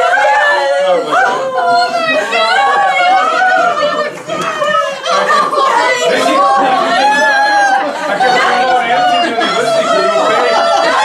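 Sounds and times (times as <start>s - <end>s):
people wailing and crying out: 0.0s - 11.0s.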